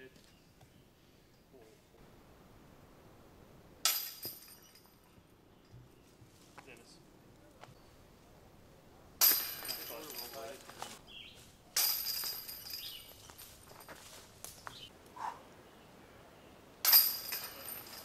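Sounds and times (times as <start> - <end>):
disc golf basket chains rattling: 9.2 - 11.0, 11.7 - 14.8, 16.8 - 18.0.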